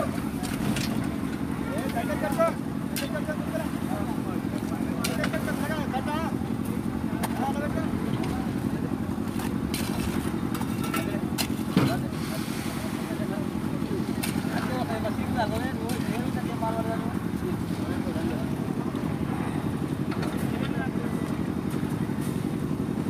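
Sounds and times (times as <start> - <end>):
machinery engine chugging: 0.0 - 23.0
shovels scraping wet concrete: 1.9 - 3.3, 9.2 - 13.1, 14.0 - 16.4.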